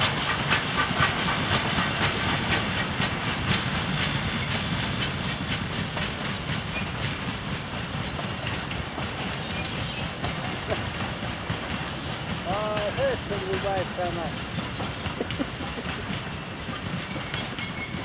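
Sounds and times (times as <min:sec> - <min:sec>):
train rumble: 0:00.0 - 0:18.0
train wheels clicking over rail joints: 0:00.0 - 0:18.0.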